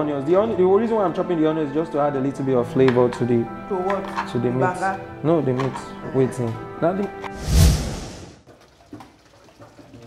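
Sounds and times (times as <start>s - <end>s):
faint kitchen noises: 2.8s - 4.6s, 5.4s - 6.5s
whoosh sound effect: 7.3s - 8.4s.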